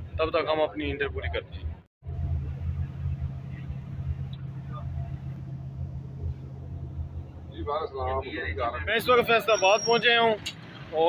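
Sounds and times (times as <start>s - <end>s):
constant hum: 0.0s - 9.4s
bus engine drone: 0.0s - 11.0s.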